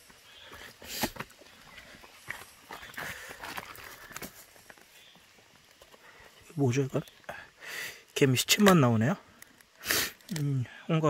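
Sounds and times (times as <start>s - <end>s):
wood crackling and snapping: 0.0s - 7.5s, 8.1s - 10.6s.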